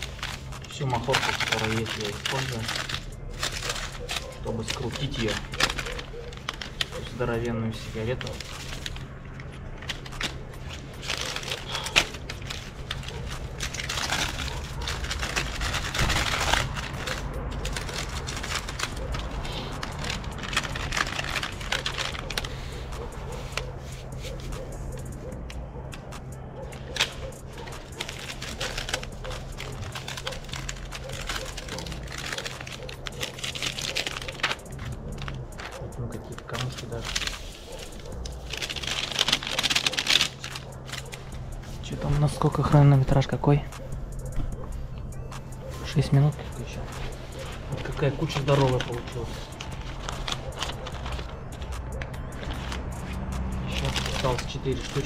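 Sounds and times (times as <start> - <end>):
tobacco shaken onto newspaper: 0.0 - 25.3, 26.4 - 42.8, 45.7 - 55.0
paper packets rustling: 0.0 - 55.0.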